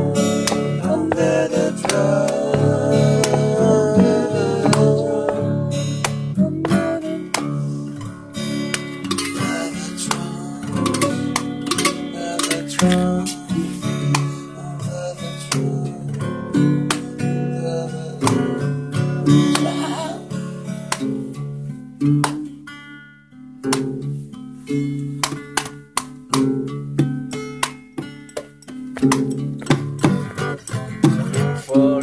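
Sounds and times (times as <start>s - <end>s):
acoustic guitar strumming: 0.0s - 32.0s.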